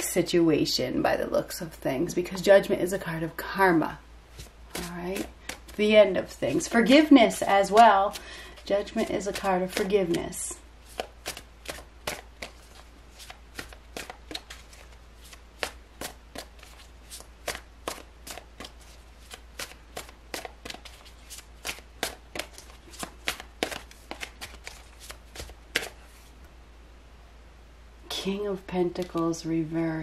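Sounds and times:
cards being shuffled: 4.3s - 26.3s, 28.9s - 29.3s.

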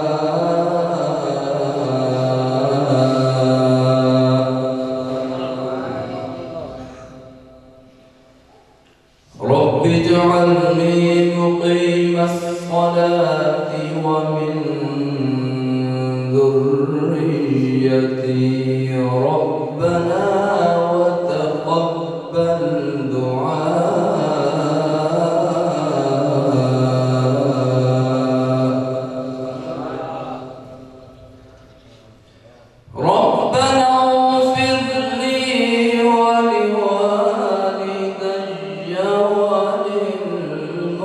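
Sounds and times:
man reciting melodically: 0.0s - 8.1s, 9.1s - 41.0s.

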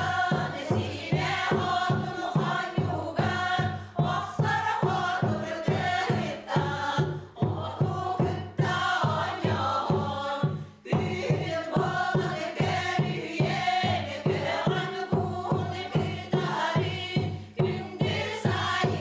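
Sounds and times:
steady drumbeat: 0.0s - 19.0s
women's choir singing: 0.0s - 19.0s.

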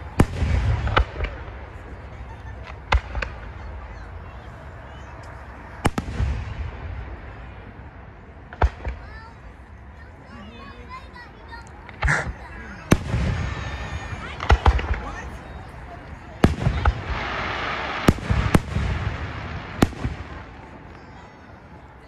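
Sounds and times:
fireworks bursting bangs: 0.0s - 4.2s, 5.0s - 9.4s, 11.8s - 22.0s
fireworks crackle: 0.0s - 10.0s, 10.9s - 22.0s.

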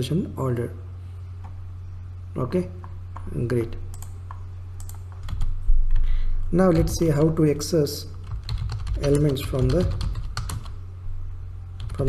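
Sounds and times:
steady low hum: 0.0s - 12.0s
computer keyboard typing: 3.9s - 5.6s, 8.1s - 10.8s, 11.8s - 12.0s.

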